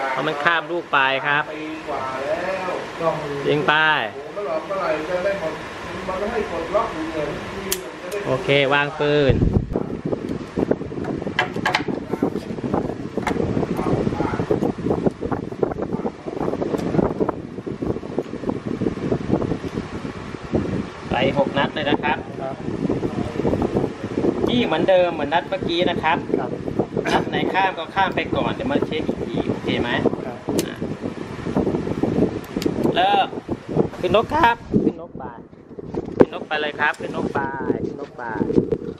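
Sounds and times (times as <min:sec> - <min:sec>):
wind rumbling on microphone: 0:05.6 - 0:38.9
revolver clicks: 0:07.7 - 0:08.3, 0:32.4 - 0:33.0.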